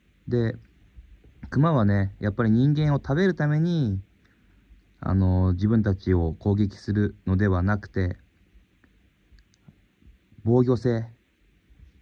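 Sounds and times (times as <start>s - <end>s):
man speaking: 0.2s - 0.7s, 1.4s - 4.1s, 5.0s - 8.2s, 10.4s - 11.2s.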